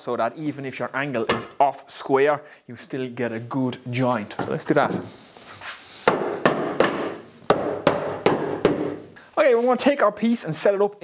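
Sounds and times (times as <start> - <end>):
sharp wooden knocks: 6.0 - 9.0.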